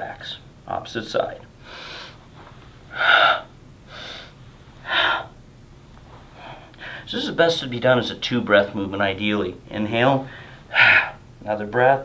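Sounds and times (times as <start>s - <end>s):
man breathing loudly: 1.6s - 2.2s, 2.9s - 5.3s, 6.3s - 7.1s, 10.3s - 11.2s.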